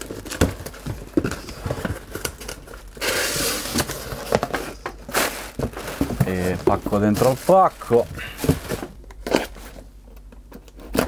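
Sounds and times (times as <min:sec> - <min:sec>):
cardboard scraping and rustling: 0:00.0 - 0:09.9.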